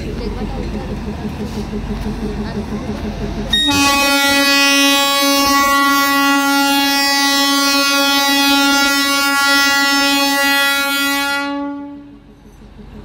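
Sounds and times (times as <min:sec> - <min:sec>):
train air horn blast: 0:03.5 - 0:12.2.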